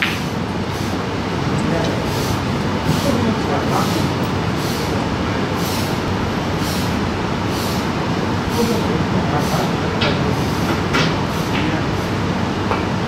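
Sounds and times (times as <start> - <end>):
room rumble with hiss: 0.0 - 13.0
faint voices: 1.4 - 6.1, 8.4 - 10.9.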